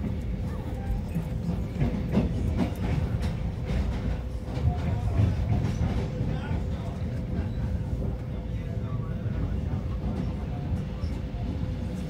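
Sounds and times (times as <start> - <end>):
train rumbling: 0.0 - 12.0.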